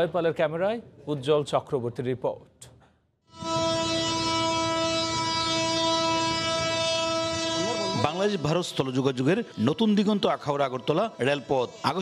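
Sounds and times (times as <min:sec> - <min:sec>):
locomotive horn blast: 0:03.3 - 0:12.0.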